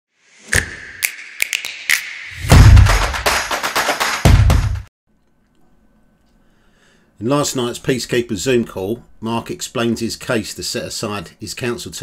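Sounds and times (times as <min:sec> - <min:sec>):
sharp percussive taps and knocks: 0:00.5 - 0:04.9.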